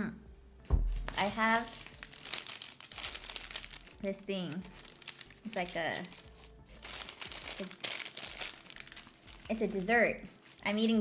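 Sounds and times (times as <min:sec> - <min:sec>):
food wrapper crinkling: 0:00.9 - 0:11.0.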